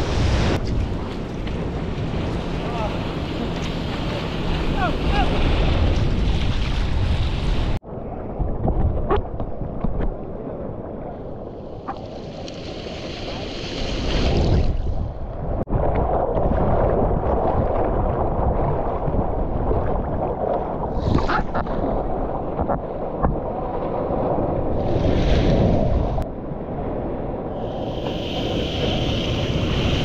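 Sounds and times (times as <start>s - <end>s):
ocean surf breaking: 0.0s - 7.8s, 11.2s - 15.0s, 20.2s - 30.0s
water splashes: 0.0s - 7.8s, 10.9s - 15.1s
wind on microphone: 0.0s - 30.0s.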